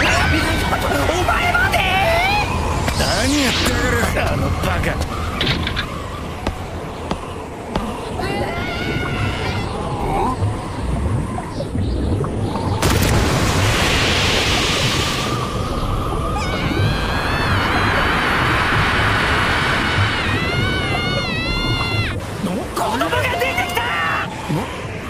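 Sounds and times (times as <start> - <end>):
cartoon rushing water: 5.9 - 25.0.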